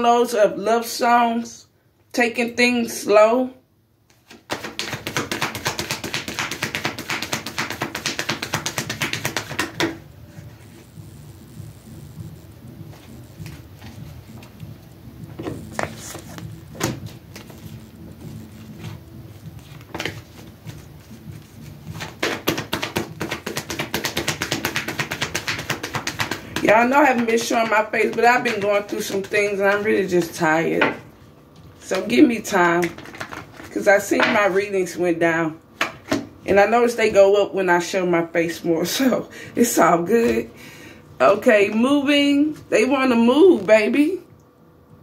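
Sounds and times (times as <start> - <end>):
cards being shuffled: 4.1 - 10.8, 15.3 - 30.3, 32.8 - 34.4.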